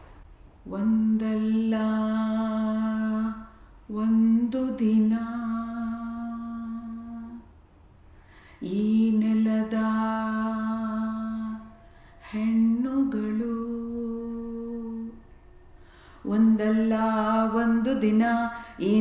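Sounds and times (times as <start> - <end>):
woman singing unaccompanied: 0.6 - 7.5, 8.6 - 15.4, 16.1 - 19.0
singer breathing: 8.1 - 8.6, 15.7 - 16.3, 18.5 - 18.8.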